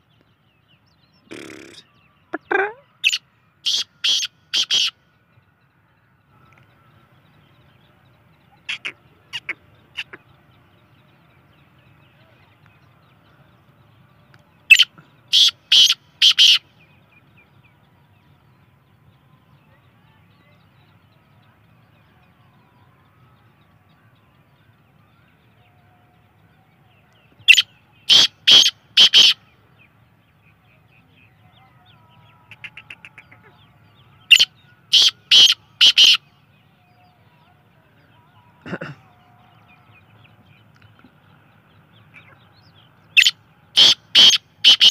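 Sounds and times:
francolin calling: 0:01.3 - 0:05.0, 0:14.7 - 0:16.7, 0:27.5 - 0:29.4, 0:34.3 - 0:36.2, 0:43.2 - 0:44.9.

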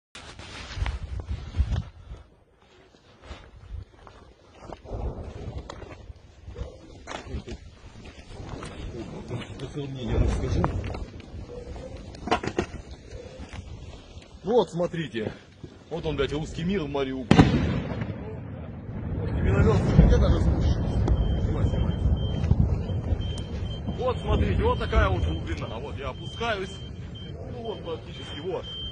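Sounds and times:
footsteps crunching over rubble: 0:00.2 - 0:17.4
microphone handling rumble: 0:04.8 - 0:13.8, 0:17.3 - 0:25.8.

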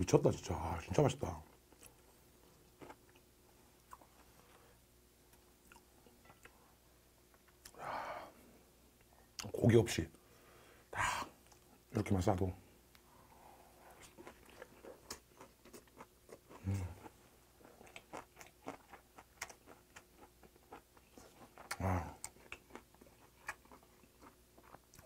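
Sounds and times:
close-miked chewing: 0:13.7 - 0:25.0.

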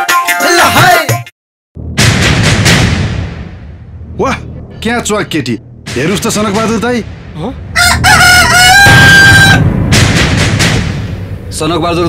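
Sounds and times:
loud low rumbling: 0:01.8 - 0:12.0
rooster crowing: 0:07.8 - 0:09.7.

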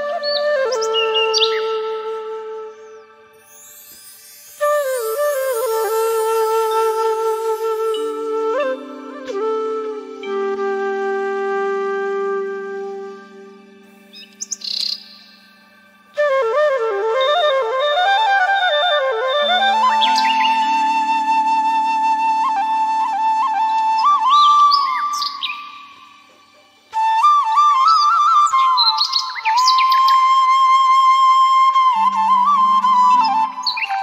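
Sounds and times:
held flute note: 0:00.0 - 0:34.0
bird chirping and trilling: 0:13.6 - 0:15.6, 0:19.4 - 0:22.8, 0:24.0 - 0:26.9, 0:27.5 - 0:30.5, 0:32.0 - 0:34.0
birds chirping: 0:13.6 - 0:15.8.

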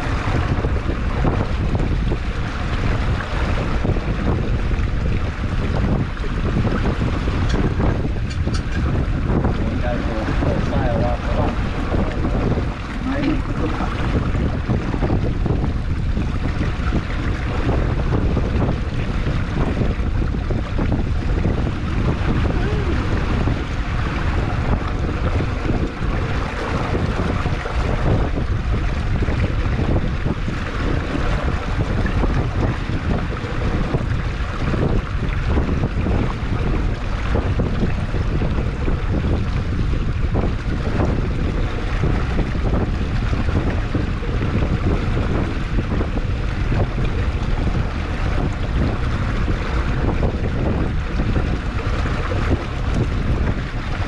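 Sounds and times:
water rushing along hull: 0:00.0 - 0:54.0
wind buffeting microphone: 0:00.0 - 0:54.0.

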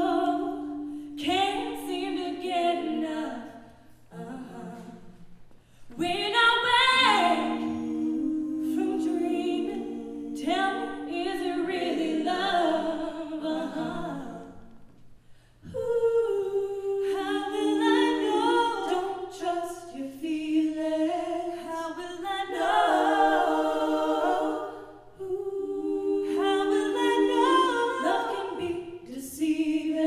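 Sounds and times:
vocal ensemble singing harmonies: 0:00.0 - 0:30.0.

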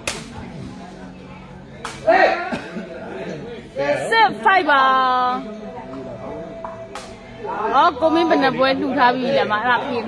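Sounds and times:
faint crowd murmur: 0:00.0 - 0:10.0.

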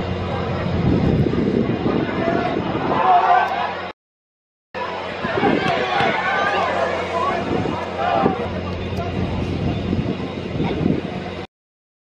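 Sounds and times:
crowd din: 0:00.0 - 0:03.9, 0:04.8 - 0:11.5
low rumble: 0:00.0 - 0:03.9, 0:04.8 - 0:11.5
spectators shouting: 0:01.7 - 0:03.9, 0:04.8 - 0:09.3.

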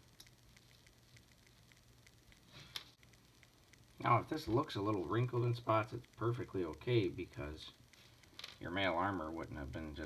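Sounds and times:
faint handling ticks: 0:00.0 - 0:10.0
faint steady hum: 0:00.0 - 0:10.0.

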